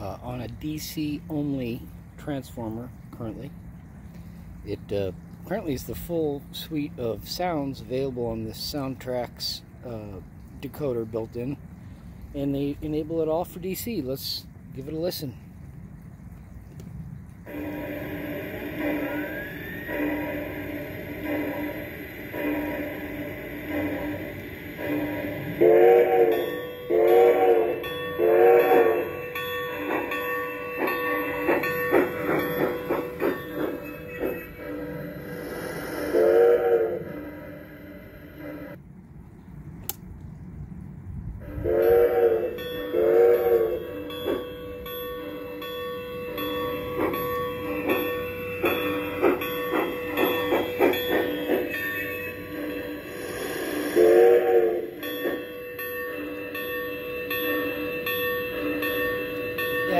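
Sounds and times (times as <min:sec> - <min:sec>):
steam hiss: 0:17.5 - 0:29.1, 0:30.8 - 0:38.8, 0:46.4 - 0:55.6
multi-tone steam whistle blasts: 0:17.5 - 0:30.1, 0:34.6 - 0:38.8, 0:41.4 - 0:44.4, 0:48.6 - 0:55.6.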